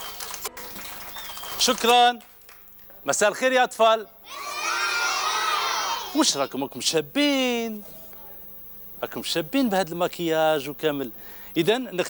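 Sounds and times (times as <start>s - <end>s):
children shouting in chorus: 4.2s - 6.2s.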